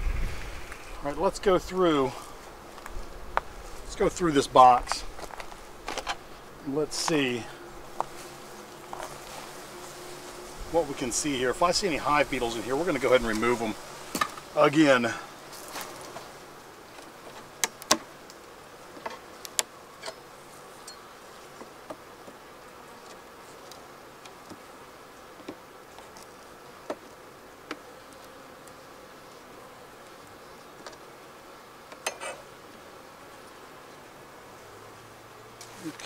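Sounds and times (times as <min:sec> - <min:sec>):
honeybees buzzing: 0:00.0 - 0:36.0
hive tool prying wooden frames: 0:17.0 - 0:18.2, 0:25.3 - 0:28.8.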